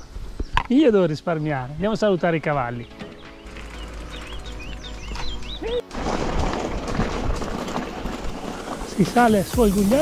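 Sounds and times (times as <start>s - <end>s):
bicycle tyres crunching on gravel: 3.3s - 10.0s.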